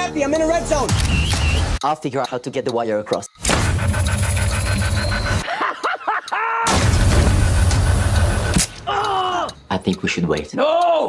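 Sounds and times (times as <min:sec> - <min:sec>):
dense trailer music with effects: 0:03.4 - 0:05.4, 0:06.7 - 0:08.9.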